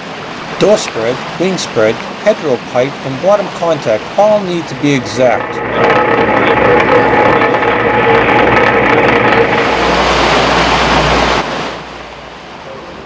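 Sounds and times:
rushing wash of noise: 0.0s - 13.0s
trawler machinery whine: 4.6s - 12.0s
heavy rumble: 4.6s - 12.7s.

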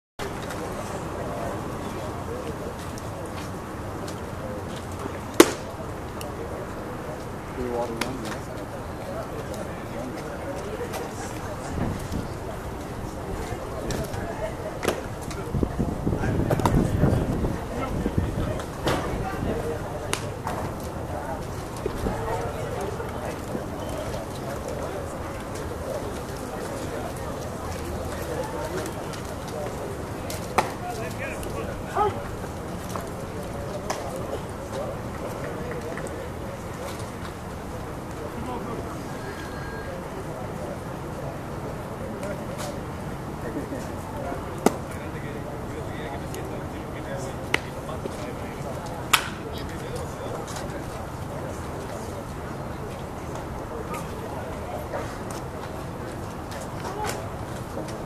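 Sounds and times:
faint voices: 0.2s - 58.0s
baseball smacking into leather mitt: 5.4s - 5.7s.

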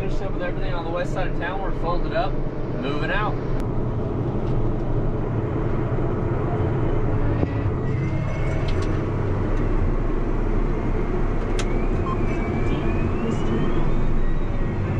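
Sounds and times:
diesel tractor running: 0.0s - 14.9s
faint high whine: 11.5s - 14.9s.

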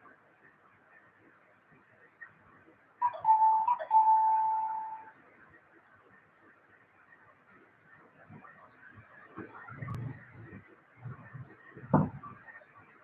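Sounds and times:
loud steady high tone: 3.0s - 5.1s.

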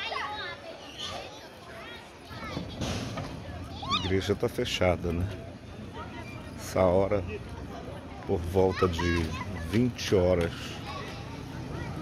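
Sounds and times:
children calling and shouting: 0.0s - 12.0s.

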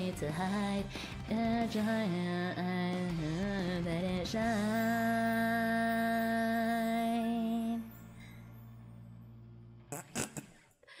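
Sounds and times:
karaoke backing track: 0.0s - 7.9s.

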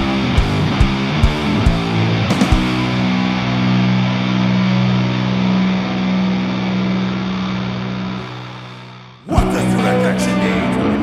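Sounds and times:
distorted electric guitar chord ringing: 0.0s - 11.0s.

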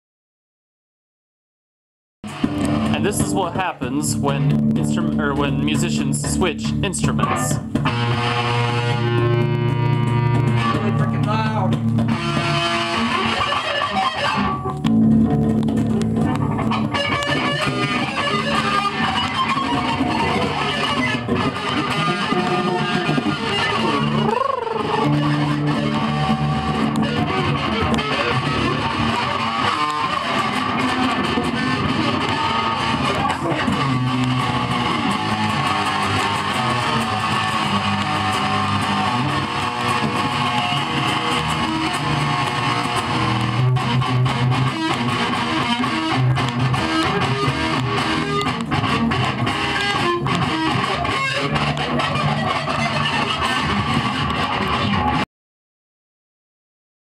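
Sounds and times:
loud electric guitar riffs: 2.2s - 55.2s.

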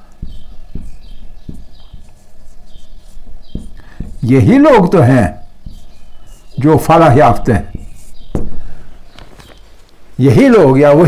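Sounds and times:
marker squeaking on whiteboard: 0.0s - 9.9s
marker knocking on board: 0.2s - 5.0s, 5.6s - 6.5s, 7.3s - 8.7s.

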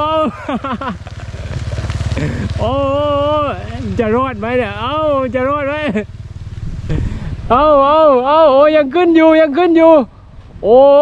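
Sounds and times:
man exclaiming anxiously: 0.0s - 0.7s, 2.2s - 6.0s, 7.5s - 11.0s
steady low rumble: 0.0s - 9.2s.

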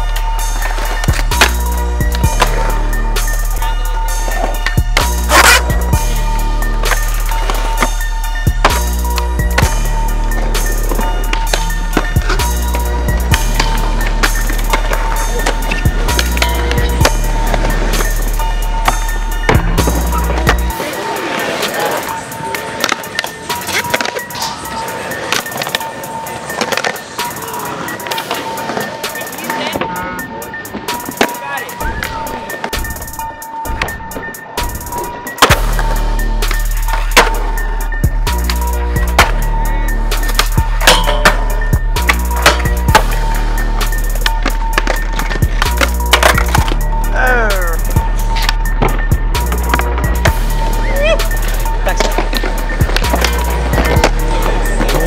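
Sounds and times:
music with heavy bass: 0.0s - 20.9s, 32.1s - 55.0s
skateboard wheels rolling: 0.0s - 55.0s
skateboard landings: 0.6s - 46.9s, 47.8s - 55.0s
skateboard tail pops: 44.2s - 46.8s.

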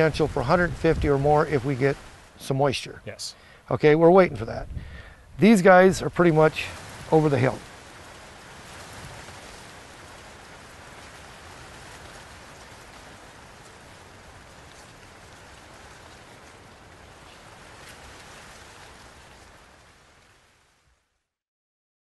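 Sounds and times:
outdoor background hiss: 0.0s - 21.4s.

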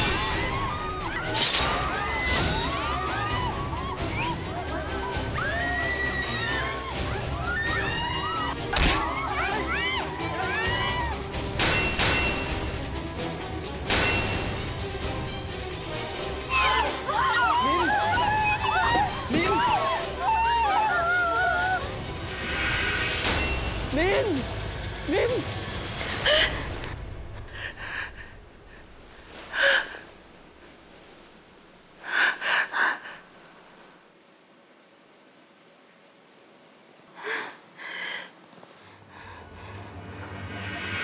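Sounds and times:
dramatic background music: 0.0s - 29.4s, 39.2s - 41.0s
woman breathing hard: 37.2s - 40.0s.

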